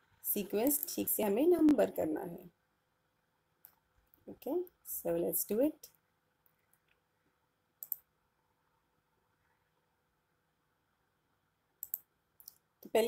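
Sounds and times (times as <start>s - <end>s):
faint short clicks: 11.8s - 12.6s.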